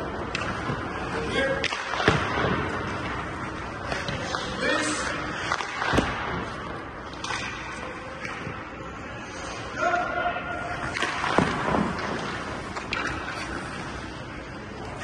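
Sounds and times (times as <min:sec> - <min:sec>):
sharp hockey puck impacts: 0:01.6 - 0:03.2, 0:05.4 - 0:06.4, 0:10.9 - 0:13.3.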